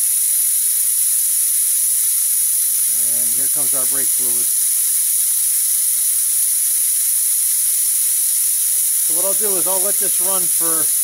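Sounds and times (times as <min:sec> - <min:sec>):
loud hiss of air: 0:00.0 - 0:11.0.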